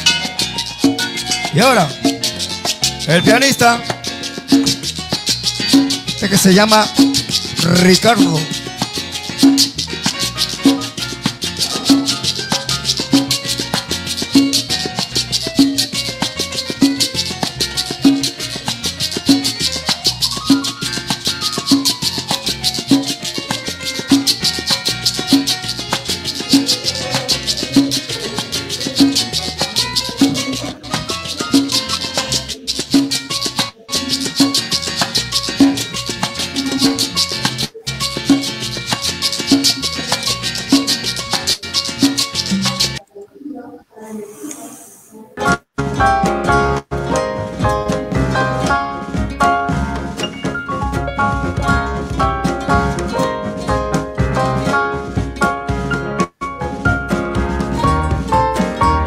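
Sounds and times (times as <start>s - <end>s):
piano solo: 0.0s - 32.7s, 45.4s - 59.0s
latin percussion with timbales: 0.0s - 43.0s, 45.4s - 59.0s
upright bass: 0.0s - 43.0s, 45.4s - 59.0s.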